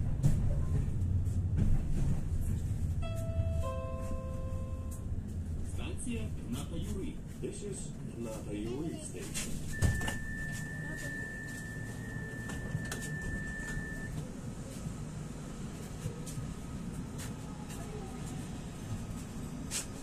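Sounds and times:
tram humming: 0.0 - 20.0
high warning beep: 9.7 - 14.2.

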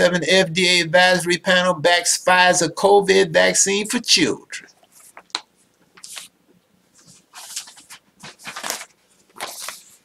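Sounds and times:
paper rustling: 4.8 - 5.4, 6.0 - 6.3, 6.9 - 10.0.

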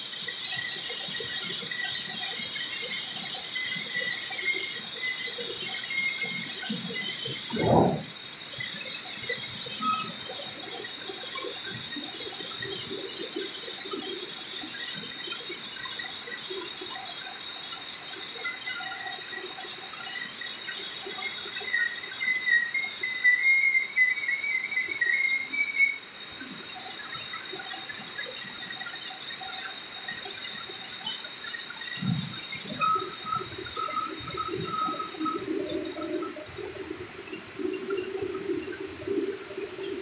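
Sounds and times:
rising squeal: 7.4 - 8.4.

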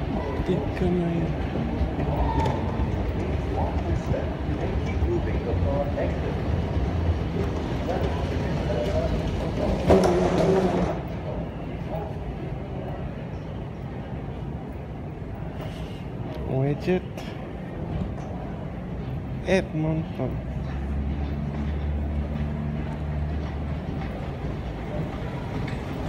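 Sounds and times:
moving walkway rumble: 0.0 - 26.0.

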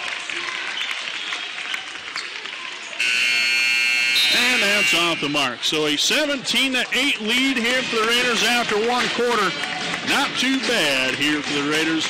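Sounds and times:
crowd noise in a gym: 0.0 - 12.0
loud scoreboard buzzer: 3.0 - 5.6.

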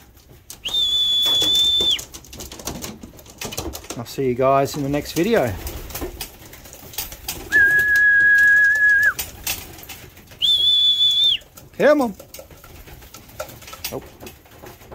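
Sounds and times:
person whistling: 0.6 - 2.0, 7.5 - 9.2, 10.4 - 11.4.

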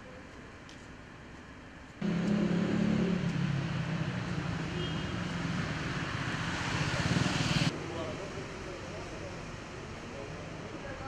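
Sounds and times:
vehicle engine running: 2.0 - 7.7.

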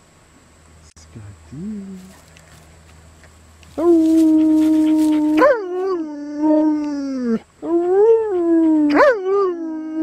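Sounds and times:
person speaking: 0.9 - 2.7
dog howling: 3.8 - 10.0.

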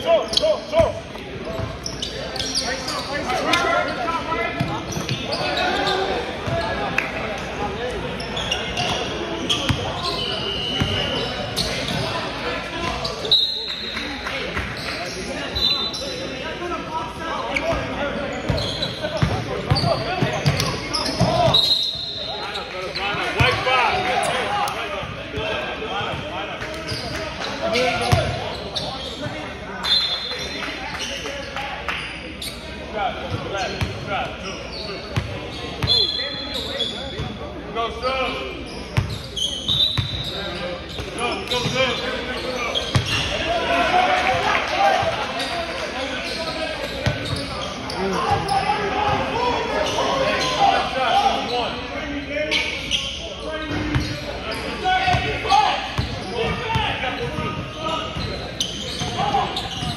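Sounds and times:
players calling out: 0.0 - 59.9.

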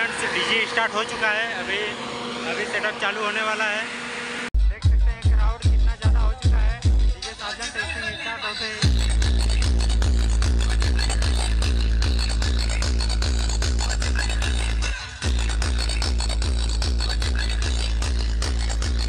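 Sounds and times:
electronic dance music with deep bass: 0.0 - 19.0.

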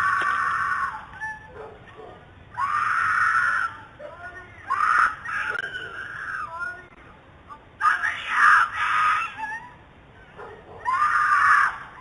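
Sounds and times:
woman screaming: 8.0 - 9.8, 10.8 - 12.0.

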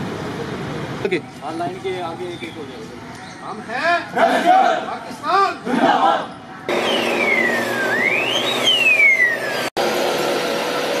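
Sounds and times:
running vehicles: 0.0 - 11.0
emergency siren wailing: 6.7 - 9.7.

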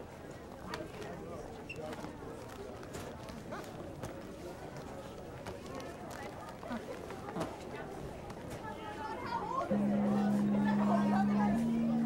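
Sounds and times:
murmur of children's voices: 0.0 - 12.0.

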